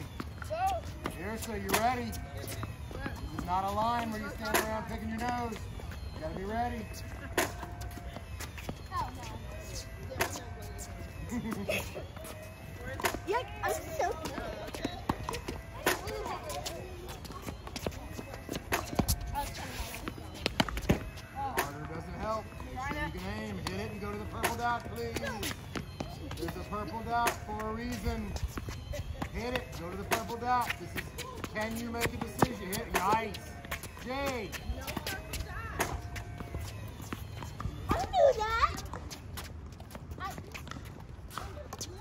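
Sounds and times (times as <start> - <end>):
children talking: 0.0 - 39.4, 40.0 - 42.0
tennis balls hit and bouncing: 0.0 - 42.0.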